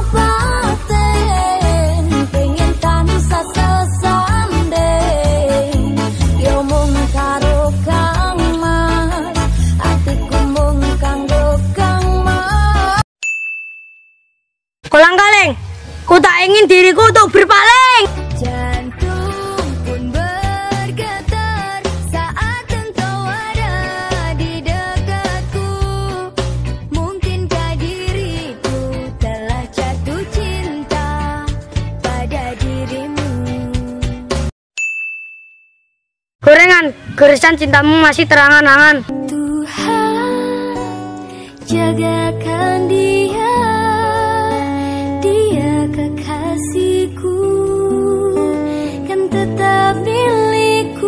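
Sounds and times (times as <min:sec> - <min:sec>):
background music: 0:00.0 - 0:13.0, 0:14.9 - 0:34.5, 0:36.5 - 0:51.0
bright ding: 0:13.2 - 0:14.4, 0:34.8 - 0:36.0
boy speaking: 0:14.9 - 0:18.1, 0:36.4 - 0:39.1.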